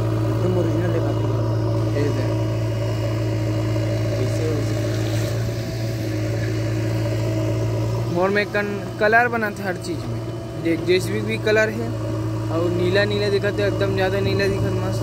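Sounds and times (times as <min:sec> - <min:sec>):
diesel engine running: 0:00.0 - 0:15.0.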